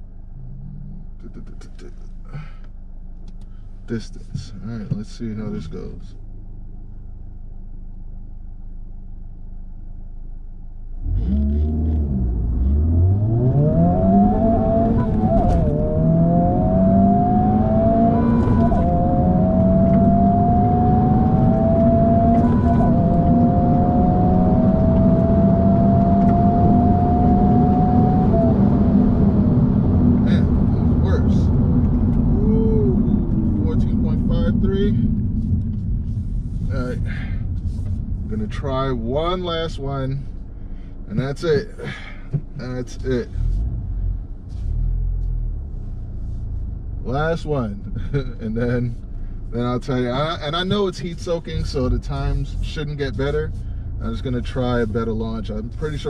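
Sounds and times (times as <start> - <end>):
car engine revving: 11.0 - 56.0
gear upshifts: 11.1 - 40.4.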